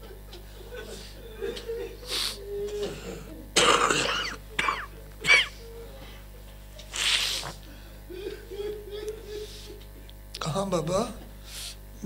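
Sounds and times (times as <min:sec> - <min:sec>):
man sobbing: 0:00.7 - 0:03.6, 0:04.8 - 0:06.2, 0:07.7 - 0:09.9.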